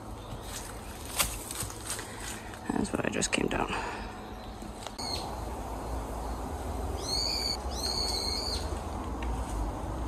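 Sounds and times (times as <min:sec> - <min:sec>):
steady low rumble: 0:00.0 - 0:10.0
bird whistling call: 0:07.0 - 0:08.7.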